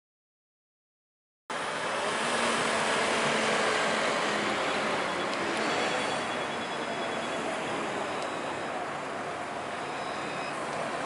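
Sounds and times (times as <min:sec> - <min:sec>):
street traffic noise: 0:01.5 - 0:11.0.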